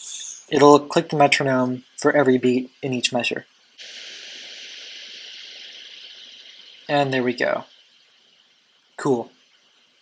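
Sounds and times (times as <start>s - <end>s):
high-pitched hiss: 0.0s - 10.0s.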